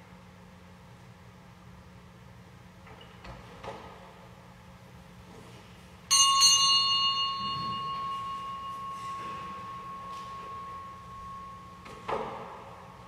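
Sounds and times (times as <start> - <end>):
bell ringing: 6.1 - 13.0.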